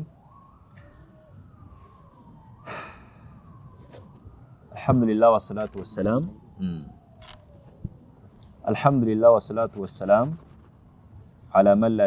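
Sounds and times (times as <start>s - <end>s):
faint siren: 0.0s - 12.0s
man drawing breath: 2.6s - 3.6s.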